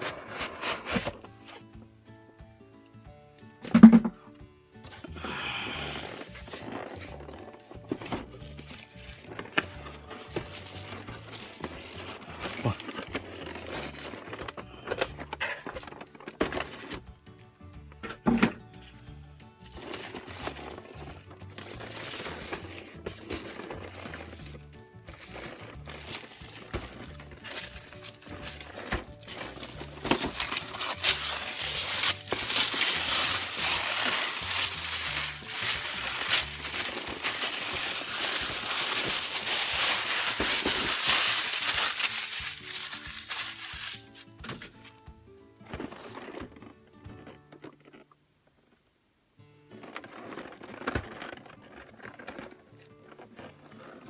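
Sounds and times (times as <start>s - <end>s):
background music: 0.0s - 48.0s, 49.3s - 54.0s
plastic wrap crinkling and tearing: 5.2s - 17.1s, 19.6s - 44.5s.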